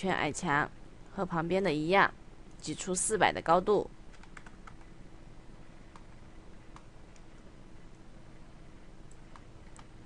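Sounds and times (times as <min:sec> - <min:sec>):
faint steady hum: 0:00.0 - 0:10.0
computer keyboard keystrokes: 0:04.1 - 0:04.9, 0:09.1 - 0:09.9.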